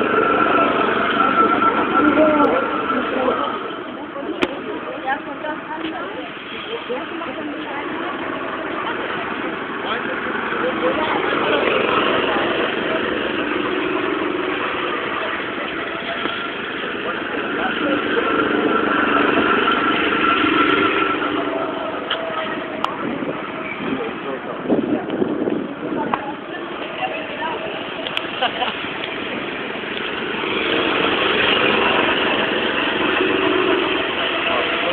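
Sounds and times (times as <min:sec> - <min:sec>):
go-kart engines running: 0:00.0 - 0:34.9.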